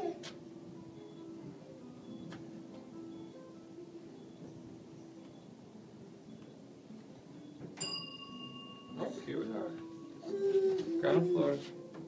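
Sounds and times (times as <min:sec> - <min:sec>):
elevator chime ding: 0:02.0 - 0:02.4, 0:07.4 - 0:10.2.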